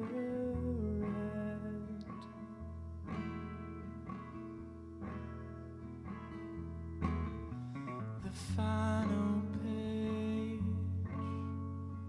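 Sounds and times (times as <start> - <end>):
fingerpicked acoustic guitar: 0.0 - 12.0.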